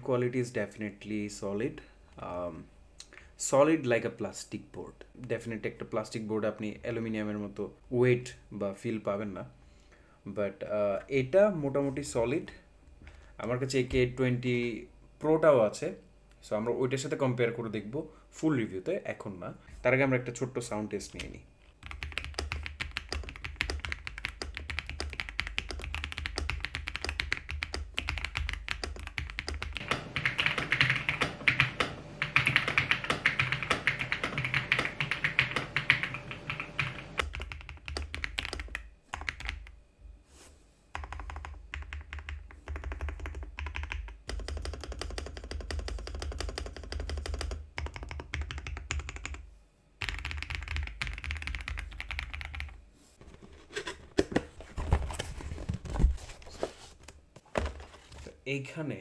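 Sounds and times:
mechanical keyboard typing: 21.8 - 39.7, 41.0 - 49.4, 50.0 - 52.8.

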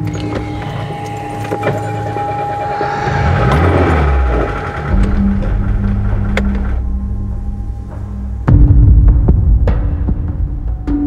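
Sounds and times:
car engine revving: 0.0 - 8.5
low droning music: 0.0 - 11.0.

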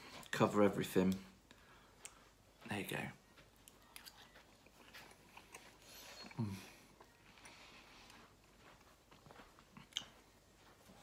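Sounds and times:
person chewing: 3.5 - 11.0
person murmuring mm: 6.2 - 6.9.

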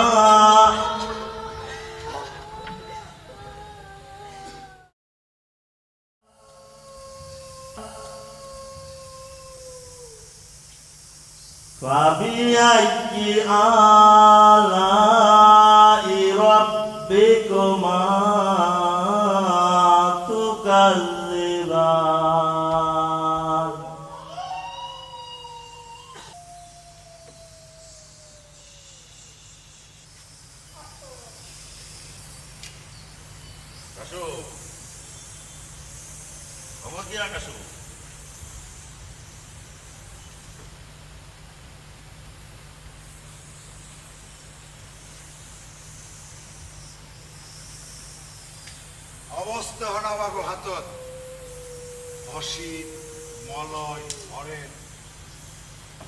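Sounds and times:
long wailing tone: 0.0 - 4.9, 6.2 - 10.4, 12.5 - 29.3, 49.4 - 55.0
voices chanting: 6.3 - 9.3, 49.3 - 55.0.

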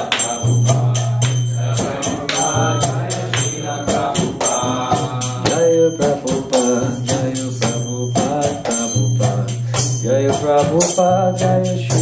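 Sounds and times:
devotional mantra singing: 0.0 - 12.0
hand cymbals striking: 0.0 - 12.0.

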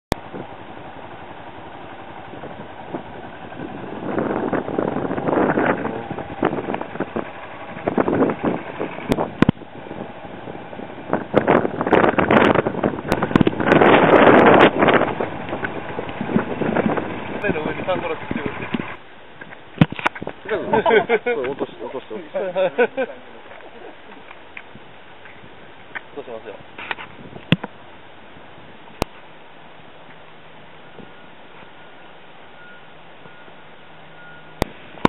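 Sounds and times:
wind buffeting microphone: 0.1 - 29.2.

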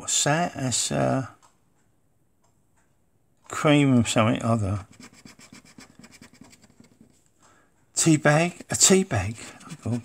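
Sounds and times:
scraper scratching card: 4.9 - 7.2, 9.3 - 10.0.

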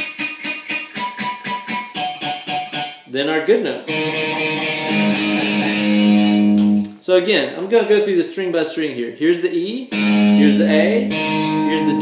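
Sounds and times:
electric guitar chord strummed: 0.0 - 3.0, 3.9 - 6.8, 9.9 - 12.0.

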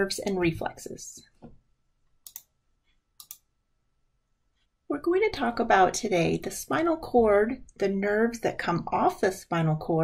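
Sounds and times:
computer button clicks: 2.2 - 2.5, 3.2 - 3.5.

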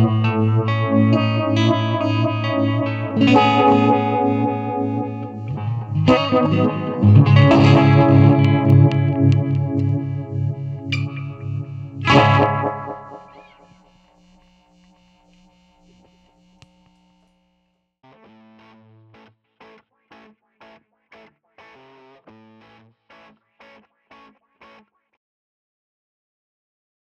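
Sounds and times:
electric guitar chord ringing: 0.0 - 13.8
logo jingle musical stabs: 3.3 - 13.6.

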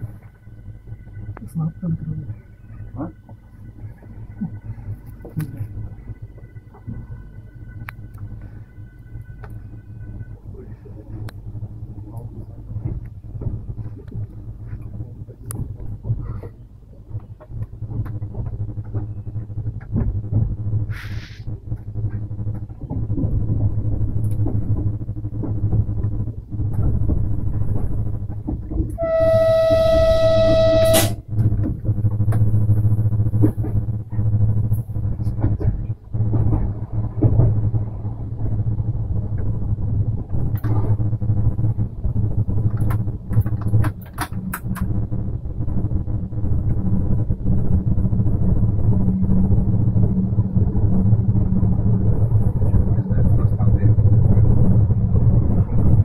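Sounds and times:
train running low hum: 0.0 - 56.0
loud signal tone: 28.9 - 35.3, 40.8 - 56.0.

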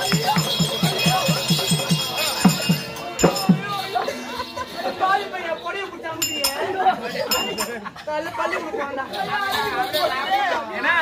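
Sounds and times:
sharp metallic clinks: 0.0 - 5.5, 6.1 - 7.8
people talking: 0.0 - 11.0.

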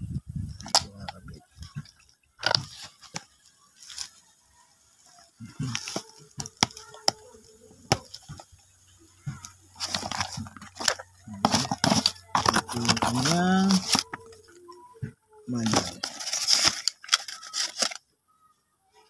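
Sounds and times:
plastic bag crinkling: 1.9 - 4.2, 5.0 - 7.2, 9.3 - 14.6, 15.5 - 18.0.

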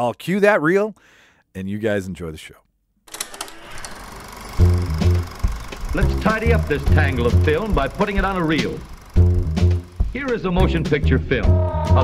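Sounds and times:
film projector clattering: 3.1 - 11.0
music: 4.6 - 12.0.

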